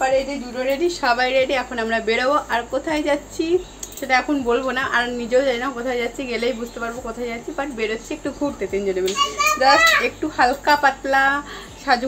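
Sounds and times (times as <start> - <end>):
people talking: 0.0 - 12.0
child's high-pitched voice: 9.1 - 10.1.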